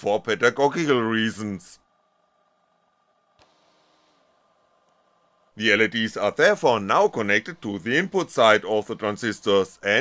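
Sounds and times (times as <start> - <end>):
faint hiss: 0.0 - 10.0
faint click: 3.4 - 3.6, 4.8 - 5.0.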